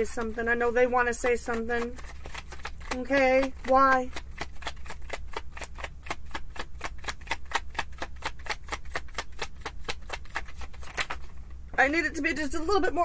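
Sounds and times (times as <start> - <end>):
cards being shuffled: 0.0 - 11.6.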